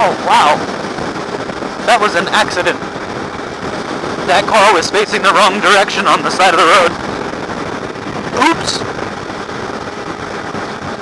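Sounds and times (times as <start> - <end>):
wind noise on microphone: 0.0 - 11.0.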